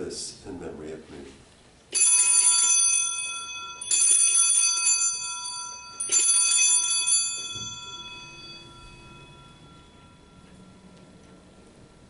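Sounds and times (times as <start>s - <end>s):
altar bells ringing: 1.9s - 12.0s.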